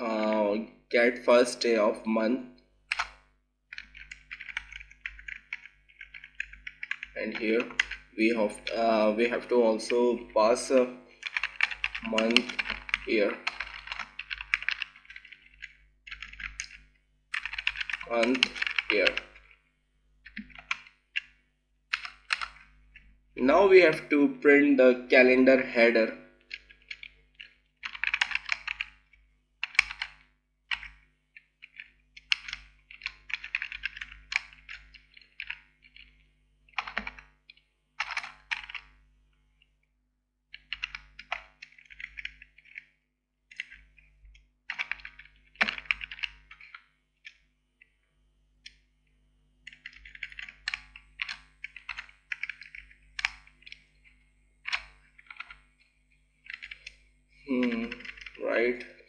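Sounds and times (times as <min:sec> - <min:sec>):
typing on computer keyboard: 0:02.8 - 0:24.0, 0:26.4 - 0:29.0, 0:29.6 - 0:39.0, 0:40.5 - 0:42.9, 0:43.5 - 0:48.0, 0:49.5 - 0:55.6, 0:56.2 - 0:59.0.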